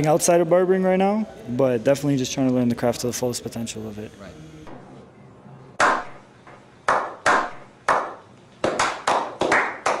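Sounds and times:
hands clapping: 0:06.9 - 0:10.0.

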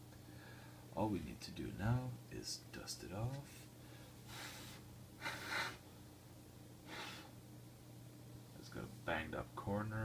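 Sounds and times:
man blowing short puffs: 0:04.2 - 0:05.9, 0:06.8 - 0:07.4.

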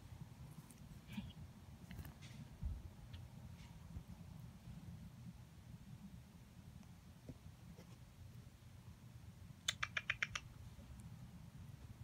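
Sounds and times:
faint low rumble: 0:00.0 - 0:09.7
sharp clicks: 0:09.6 - 0:10.5.

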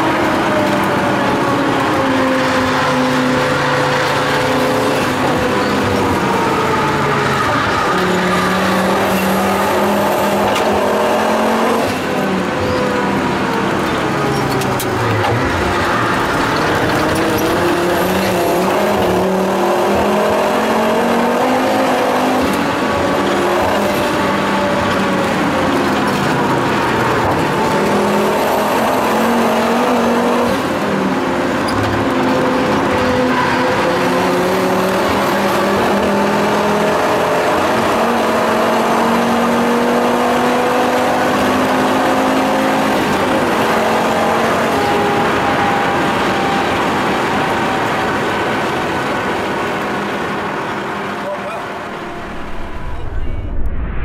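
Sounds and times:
car engine running hard: 0:00.0 - 0:53.8.

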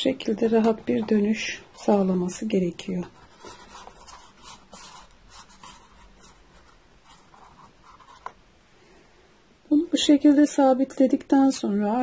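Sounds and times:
hands rustling a paper cup: 0:00.3 - 0:08.4.

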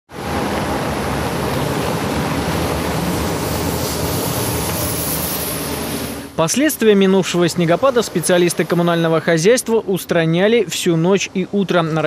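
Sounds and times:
low diesel engine: 0:00.1 - 0:09.3
engine and tyre noise: 0:00.1 - 0:09.9.

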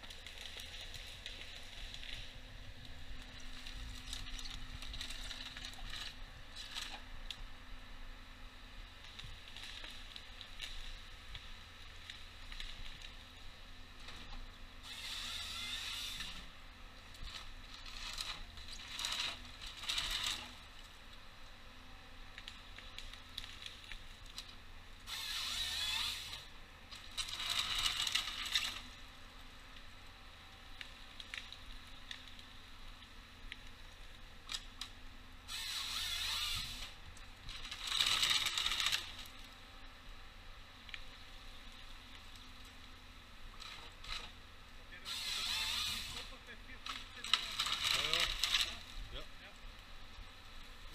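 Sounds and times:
harvester head scraping and crackling: 0:00.0 - 0:07.4, 0:09.0 - 0:21.3, 0:22.3 - 0:30.0, 0:30.6 - 0:39.8, 0:40.8 - 0:49.2
low diesel hum: 0:00.0 - 0:50.9.

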